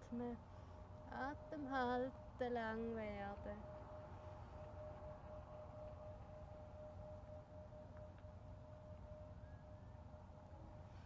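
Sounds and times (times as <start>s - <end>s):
faint low outdoor rumble: 0.0s - 11.0s
faint steady hum: 0.0s - 11.0s.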